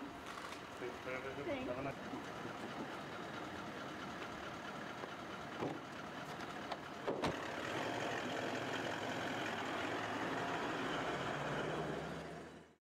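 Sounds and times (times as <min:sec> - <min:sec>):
car engine idling: 0:00.0 - 0:12.7
car door knocking shut: 0:05.6 - 0:05.8.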